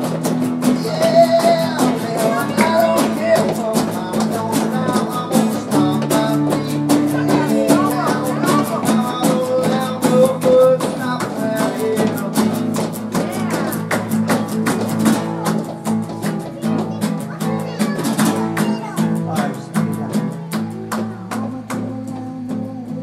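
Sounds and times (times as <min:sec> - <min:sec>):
acoustic guitars strumming chords: 0:00.0 - 0:23.0.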